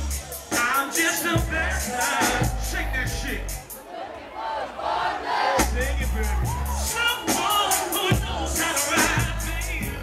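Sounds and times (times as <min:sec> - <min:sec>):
bass-heavy beat: 0:00.0 - 0:03.8, 0:05.5 - 0:10.0
crowd voices: 0:00.0 - 0:10.0
singers' vocals: 0:00.0 - 0:10.0.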